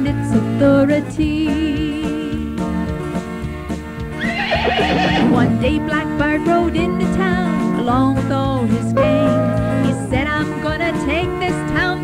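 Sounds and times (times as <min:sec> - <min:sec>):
country music: 0:00.0 - 0:12.0
horse neighing: 0:04.2 - 0:05.6.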